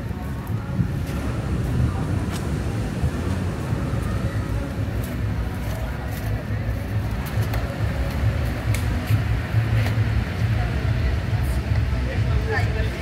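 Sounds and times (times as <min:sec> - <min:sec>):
faint voices: 0:00.0 - 0:13.0
loud uneven low rumble: 0:00.0 - 0:13.0.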